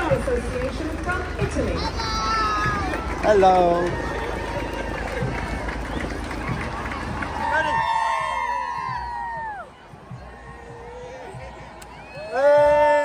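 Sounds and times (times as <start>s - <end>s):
crowd noise: 0.0s - 13.0s
voices calling out and cheering: 0.0s - 13.0s.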